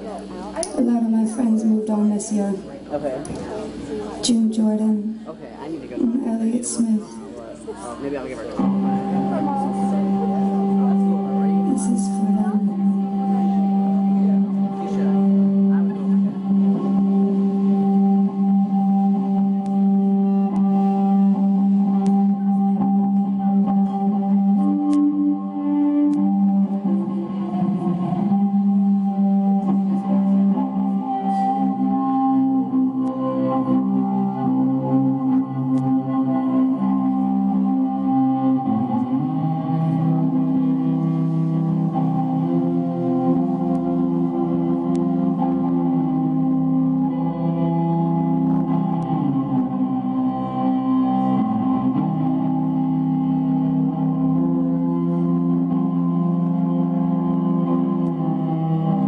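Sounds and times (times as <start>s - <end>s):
cello bowed low drone: 0.0s - 59.0s.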